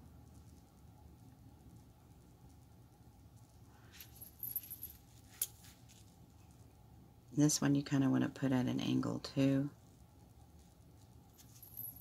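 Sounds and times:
light rustling of craft materials: 0.3 - 6.8, 9.7 - 12.0.

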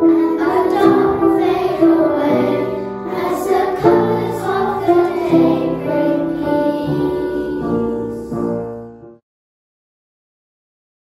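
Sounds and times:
children's choir singing: 0.0 - 8.9.

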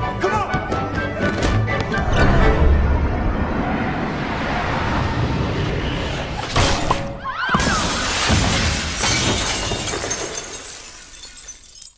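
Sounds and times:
falling glass: 7.6 - 11.9
glass backboard shattering: 7.8 - 11.9.

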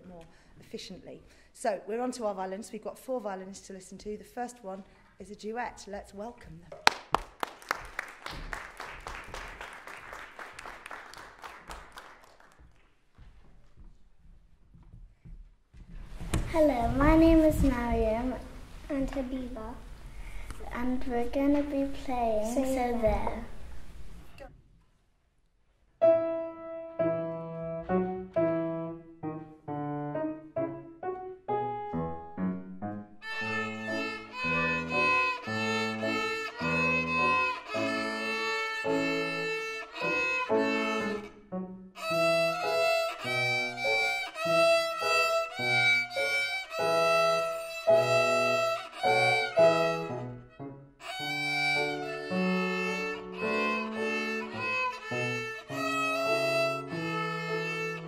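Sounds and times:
grand piano accompaniment: 16.1 - 24.3, 26.0 - 58.0
violin duet: 33.2 - 58.0.

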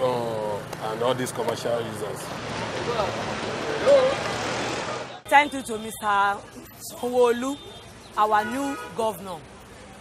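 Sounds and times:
cars driving past: 0.0 - 10.0.

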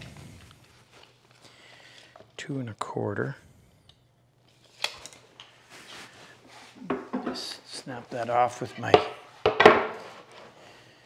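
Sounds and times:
soft rustling: 5.5 - 6.8
wooden knock and scrape: 6.8 - 7.5.

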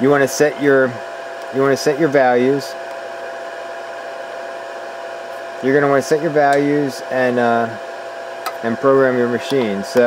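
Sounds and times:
fan whirring: 0.0 - 10.0.

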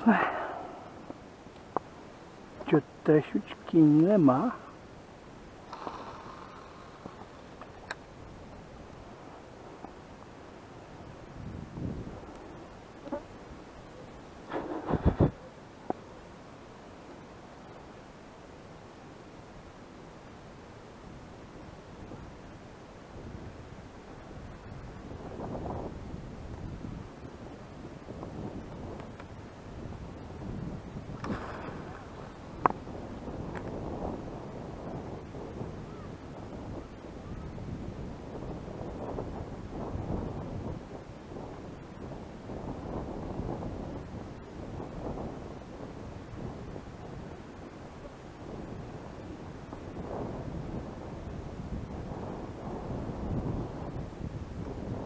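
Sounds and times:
wind buffeting microphone: 5.3 - 16.0, 21.2 - 55.0.

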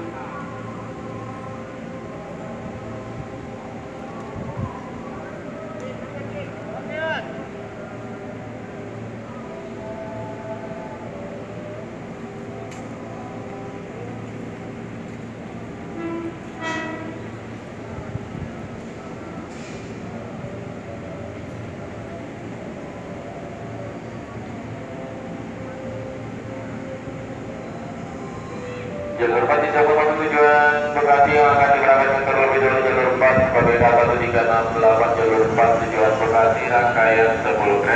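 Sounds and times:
distant voices: 0.0 - 37.9
train approaching: 0.0 - 37.9.

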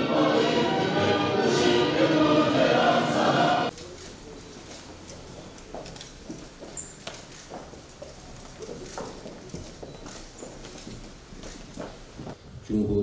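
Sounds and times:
footsteps on stone floor: 3.7 - 12.6.

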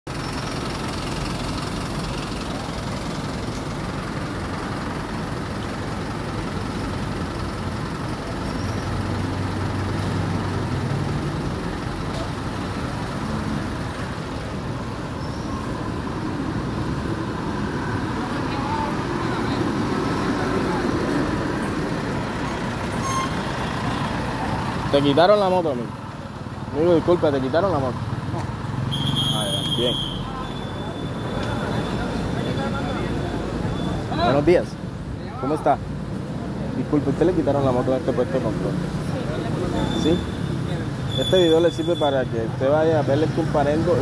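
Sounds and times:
street traffic noise: 0.0 - 44.0.

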